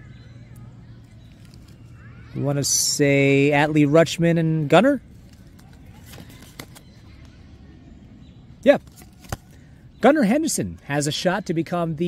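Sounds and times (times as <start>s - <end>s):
cards being flipped: 5.1s - 6.9s, 8.8s - 9.6s.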